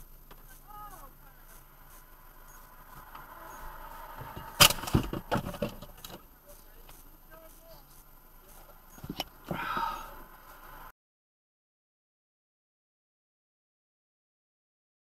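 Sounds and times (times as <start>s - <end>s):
faint voice: 0.4s - 1.7s, 9.4s - 10.8s.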